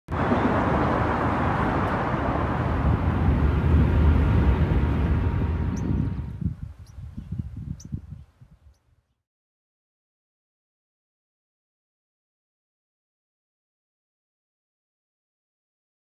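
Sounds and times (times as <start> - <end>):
wind rushing over microphone: 0.1 - 8.9.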